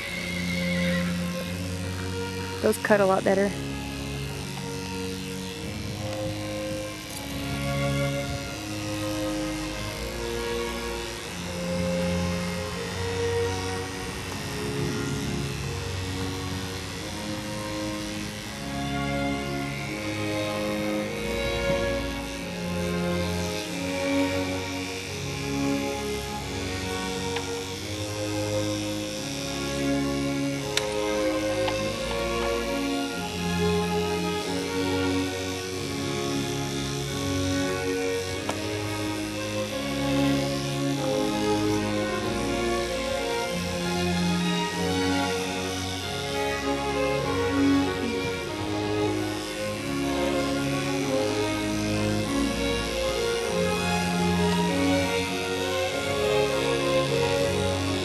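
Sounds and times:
background music of held chords: 0.0s - 58.0s.

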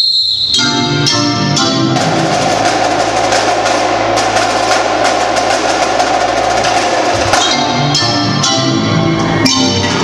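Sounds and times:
snare and tenor drumline rolling: 1.6s - 8.6s.

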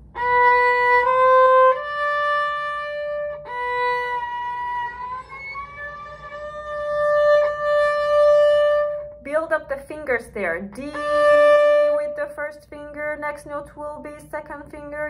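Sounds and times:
solo violin bowed notes: 0.0s - 9.2s, 10.7s - 12.3s.

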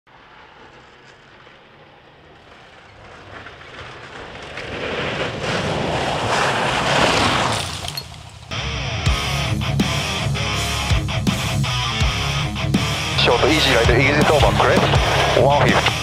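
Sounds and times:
rally car engine: 0.1s - 16.0s
gravel thrown by tyres: 2.5s - 8.6s.

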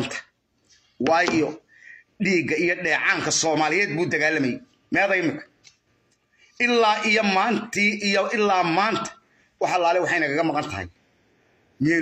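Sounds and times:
man talking: 0.0s - 0.3s, 1.0s - 5.6s, 6.5s - 11.0s, 11.8s - 12.0s.

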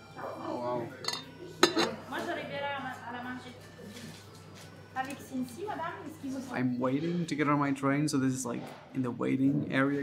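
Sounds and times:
glass clinking set down: 1.0s - 2.0s.

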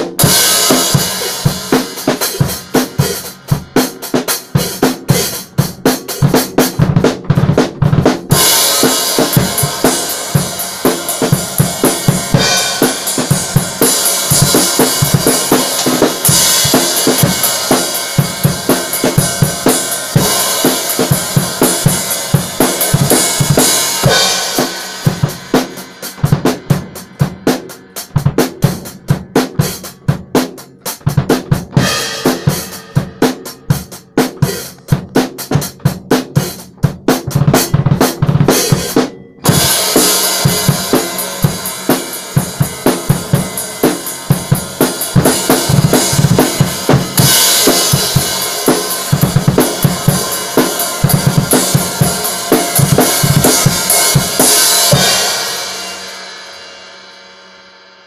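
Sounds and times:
drum kit played fast: 0.0s - 58.0s.

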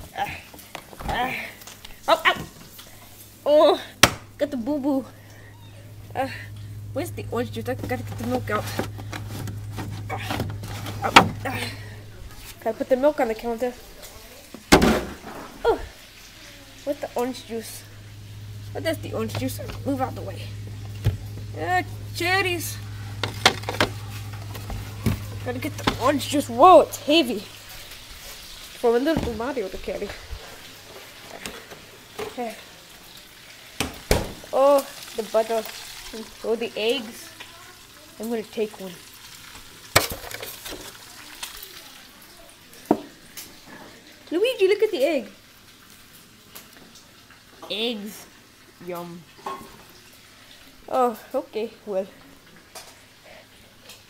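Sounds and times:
foam crackling and tapping: 6.0s - 12.6s, 18.0s - 26.7s.

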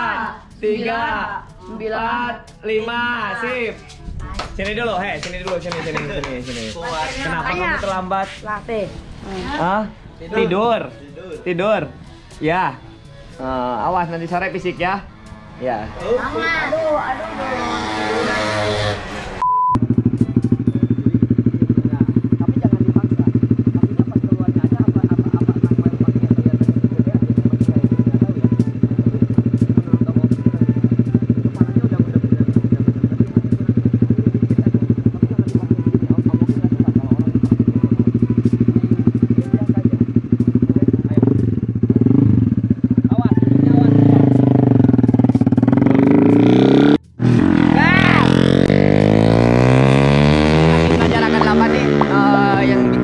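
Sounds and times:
motorcycle engine revving: 12.5s - 53.0s
motorcycle engine idling: 19.8s - 53.0s.

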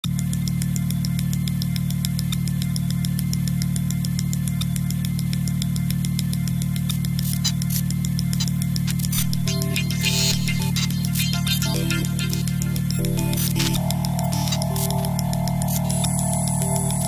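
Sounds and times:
fast ticking pulse: 7.8s - 17.0s
low drone: 11.6s - 17.0s.

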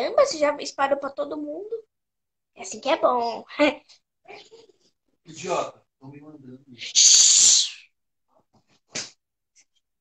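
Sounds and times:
girl hissing through teeth: 6.9s - 7.9s.

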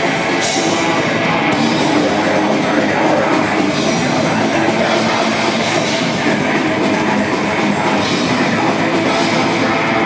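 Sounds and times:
distorted electric guitars: 0.0s - 10.0s
drum kit: 0.0s - 10.0s.

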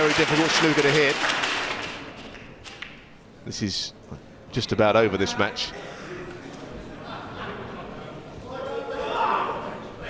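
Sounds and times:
audience applause: 0.0s - 2.4s.

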